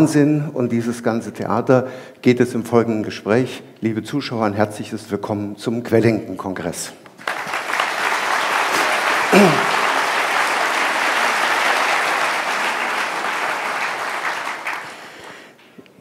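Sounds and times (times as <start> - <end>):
audience applauding: 7.1 - 15.7.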